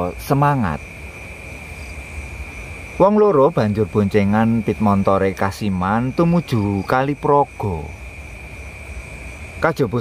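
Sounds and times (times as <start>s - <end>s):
crickets chirping: 0.0s - 10.0s
low background rumble: 0.0s - 10.0s.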